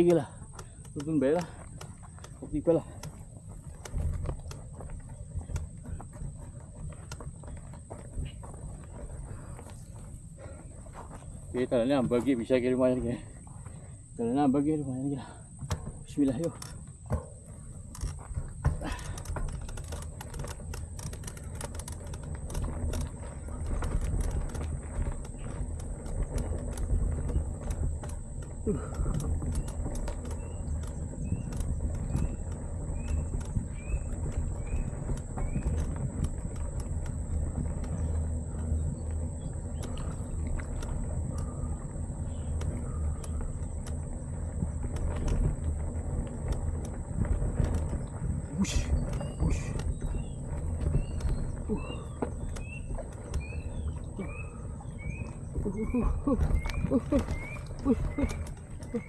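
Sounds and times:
bike rattling over bumps: 0.0s - 59.0s
wind rumbling on microphone: 15.2s - 59.0s
bird chirping: 28.4s - 43.8s, 48.0s - 59.0s.

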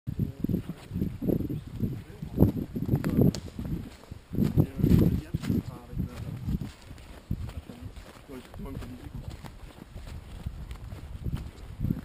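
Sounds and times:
footsteps on dry leaves: 1.7s - 12.0s.

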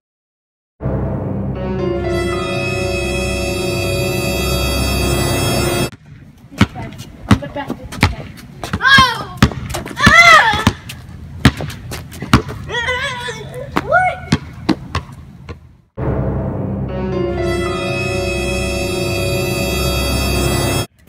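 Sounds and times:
basketball bouncing on concrete: 5.9s - 12.8s, 13.7s - 15.7s.

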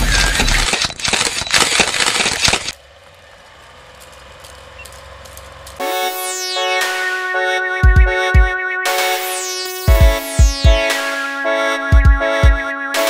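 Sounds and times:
crackling glitch static effects: 5.8s - 8.1s, 8.9s - 11.2s
synthesizer music: 5.8s - 13.0s.

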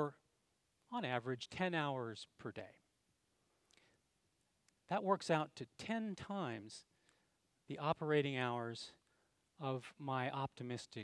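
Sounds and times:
man speaking: 0.0s - 0.2s, 0.9s - 2.9s, 4.8s - 6.9s, 7.7s - 9.0s, 9.6s - 11.0s.

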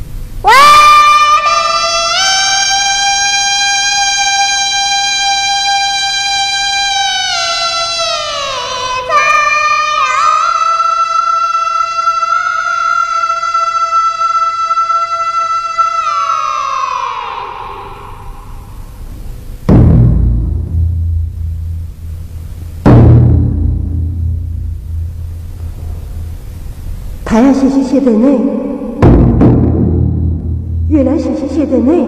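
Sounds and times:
woman singing high held notes: 0.4s - 18.6s.

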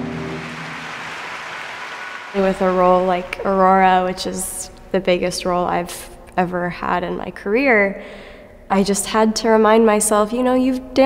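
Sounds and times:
orchestra holding a chord: 0.0s - 1.7s
audience applause: 0.0s - 3.6s.

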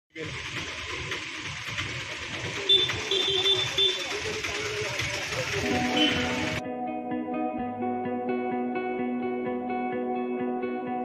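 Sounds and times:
indistinct crowd chatter: 0.3s - 6.6s
high-pitched electronic beeping: 2.7s - 4.2s, 5.6s - 6.6s.

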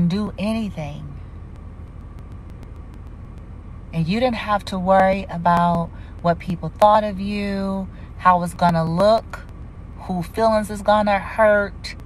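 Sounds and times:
low background rumble: 0.0s - 12.0s
person speaking: 4.0s - 9.3s.

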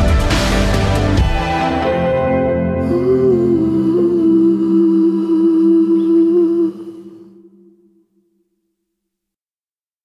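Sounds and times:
woman humming a held note: 2.8s - 8.1s.

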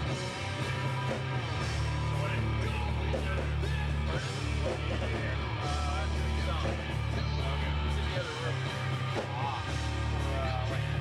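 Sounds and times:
distorted bass guitar: 0.0s - 11.0s
drums: 0.0s - 11.0s
noise rock band playing loud: 0.0s - 11.0s.

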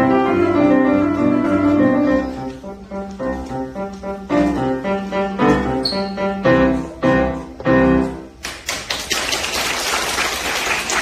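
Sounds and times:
audience applauding: 8.4s - 11.0s.

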